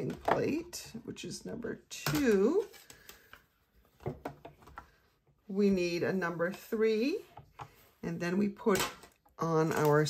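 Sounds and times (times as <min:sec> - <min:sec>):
plastic plates knocking and clicking: 0:04.0 - 0:04.8.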